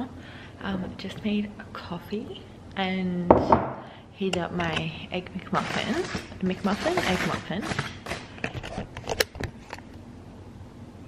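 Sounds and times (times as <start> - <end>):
aluminium foil crinkling: 5.5 - 9.0.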